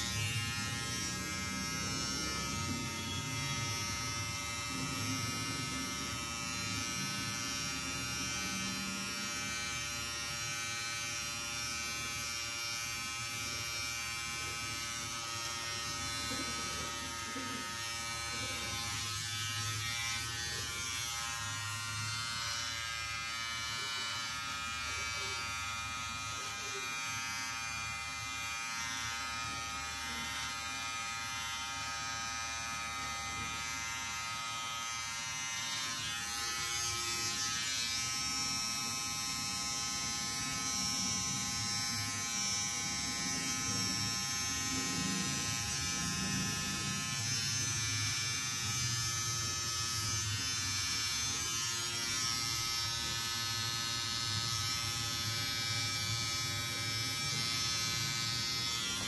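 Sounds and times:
electric trimmer buzzing: 0:00.0 - 0:59.0.

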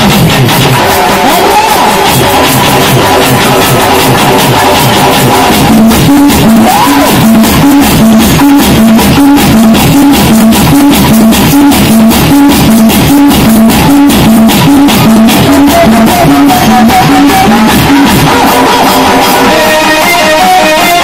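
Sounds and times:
dance song over loudspeakers: 0:00.0 - 0:21.0
drums: 0:00.0 - 0:21.0.

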